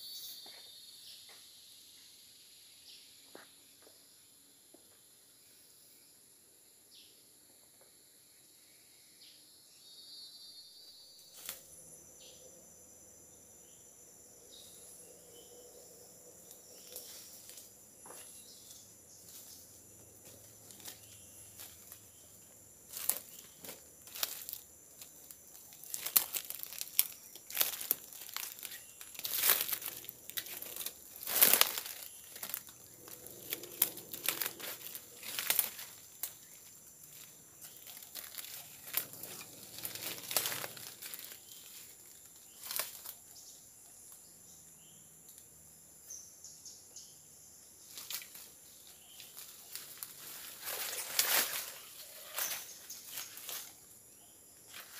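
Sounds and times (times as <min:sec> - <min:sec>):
high-pitched insect drone: 0:00.0 - 0:03.0, 0:10.4 - 0:45.2
crackling and rustling: 0:16.4 - 0:43.3, 0:47.8 - 0:54.0.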